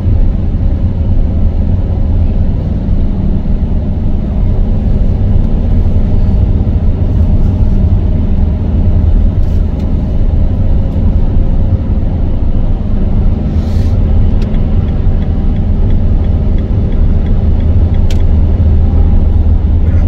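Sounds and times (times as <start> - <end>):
car interior road rumble: 0.0 - 20.0.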